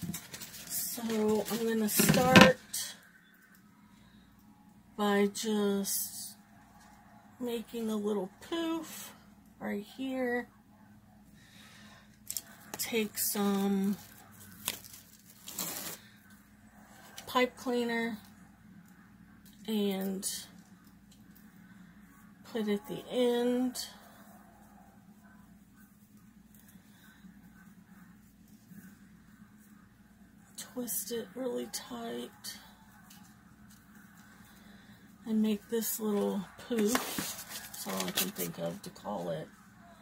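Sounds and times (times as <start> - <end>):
ribbon rustling: 0.0 - 2.5, 12.2 - 16.4, 35.9 - 39.0.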